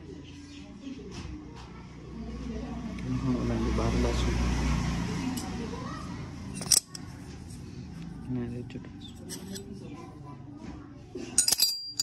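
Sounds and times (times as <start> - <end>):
indistinct voices: 3.9 - 12.0.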